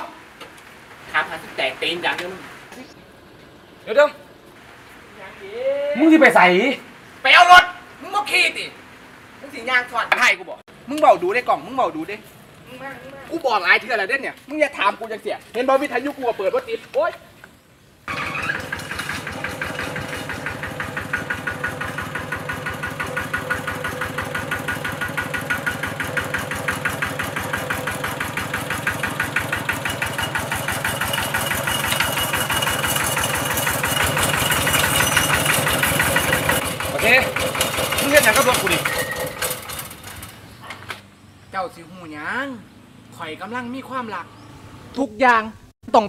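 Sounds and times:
motorcycle engine running: 18.1s - 40.4s.

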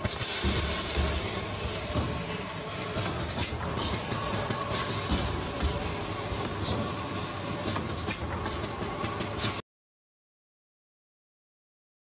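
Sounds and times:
machine mechanical clatter: 0.0s - 9.6s.

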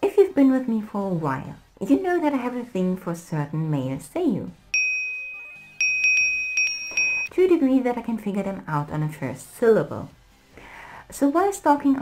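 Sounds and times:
high bell-like ding: 4.8s - 7.3s.

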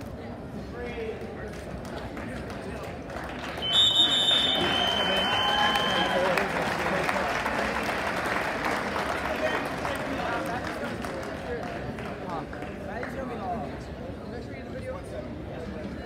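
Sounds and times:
crowd cheering and applauding: 3.3s - 10.6s
referee's whistle long blast: 3.6s - 6.4s.

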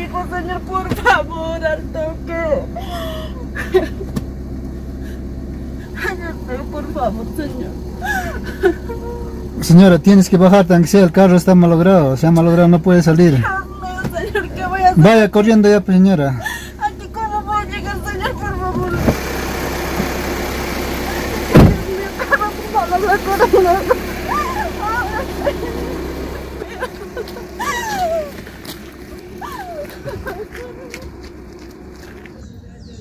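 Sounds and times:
van engine and road noise: 0.0s - 33.0s
van door slamming shut: 21.5s - 22.0s.

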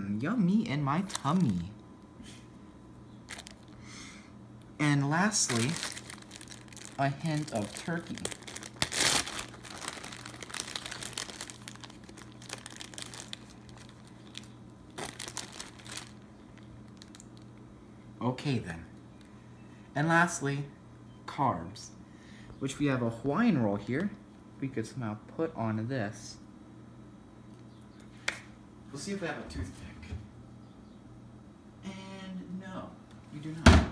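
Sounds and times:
faint low hum: 0.0s - 33.9s
plastic bag crinkling: 1.0s - 1.7s, 3.2s - 3.8s, 5.1s - 17.6s.

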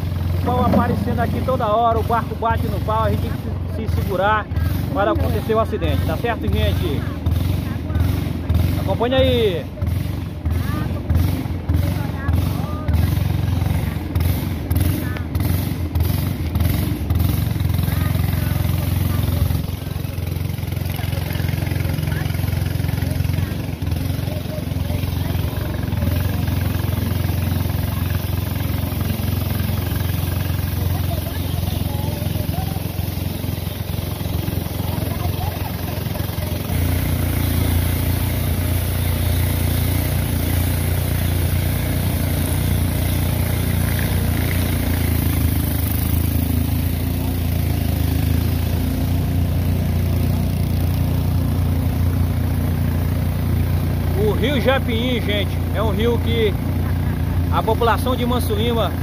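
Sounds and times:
boat motor running: 0.0s - 59.0s.

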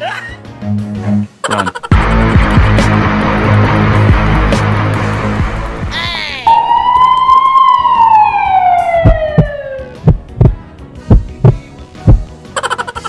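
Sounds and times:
heartbeat thumps: 6.8s - 12.3s.

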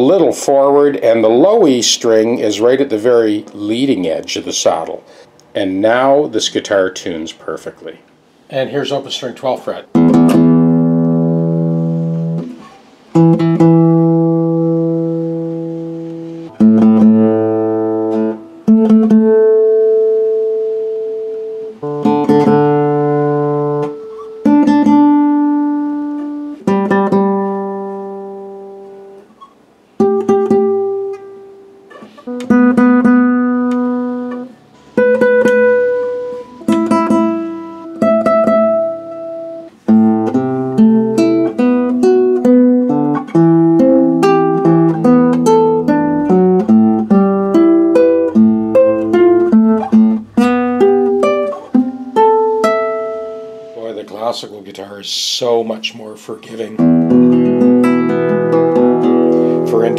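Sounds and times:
classical guitar notes plucked: 9.9s - 54.2s, 56.6s - 59.9s.

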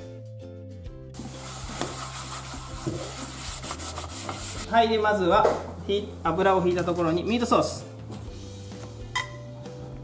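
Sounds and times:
paper towel rubbing inside pot: 1.2s - 4.7s.

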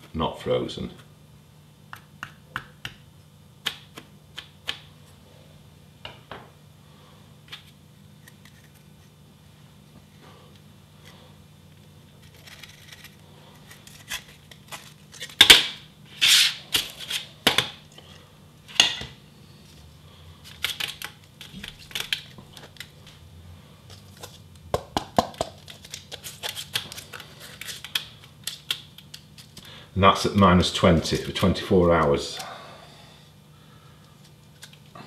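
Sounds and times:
low steady hum: 0.0s - 35.0s.

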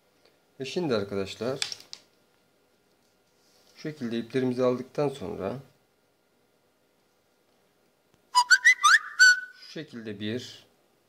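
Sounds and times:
held whistled note: 8.4s - 9.7s
high rising whistle-like chirps: 8.4s - 9.7s.

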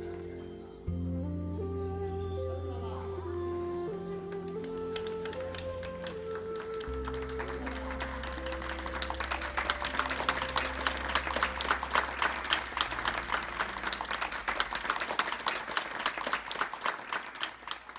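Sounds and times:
slow music with held notes: 0.0s - 15.2s
low drone: 0.0s - 15.8s
audience clapping: 4.3s - 17.9s.

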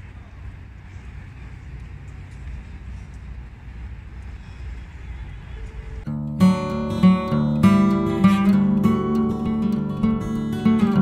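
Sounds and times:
low city rumble: 0.0s - 11.0s.

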